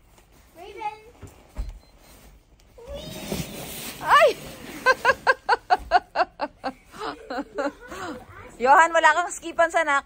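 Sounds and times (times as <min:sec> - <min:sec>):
sled scraping over snow: 0:02.9 - 0:05.5.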